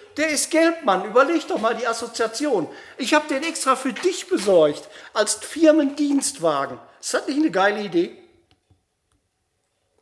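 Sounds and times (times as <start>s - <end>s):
man's voice: 0.0s - 8.3s.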